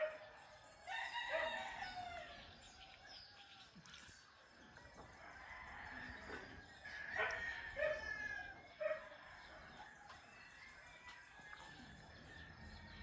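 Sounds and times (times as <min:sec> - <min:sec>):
rooster crowing: 0:05.2 - 0:08.8.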